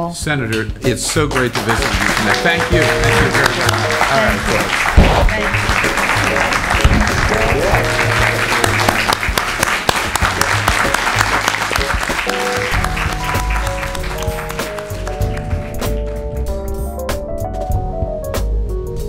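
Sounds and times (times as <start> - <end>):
audience applauding: 1.1 - 16.5
instrumental outro music: 1.4 - 19.0.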